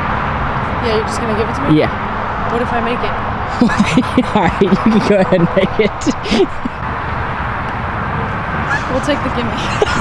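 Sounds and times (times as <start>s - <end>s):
highway traffic rumble: 0.0s - 10.0s
person laughing: 3.6s - 6.8s, 8.7s - 10.0s.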